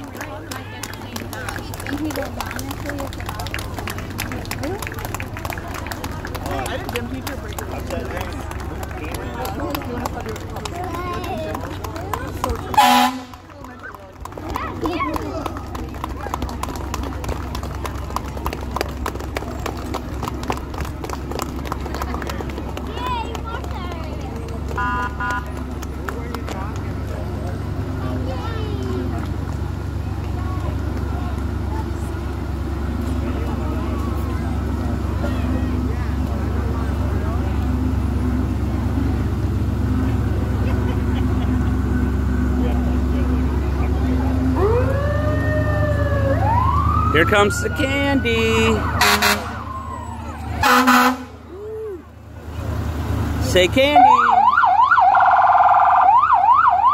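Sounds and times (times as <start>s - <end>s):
crowd voices: 0.0s - 56.9s
fire truck engines rumbling: 0.0s - 56.9s
fire siren wailing: 44.4s - 51.8s, 54.0s - 56.9s.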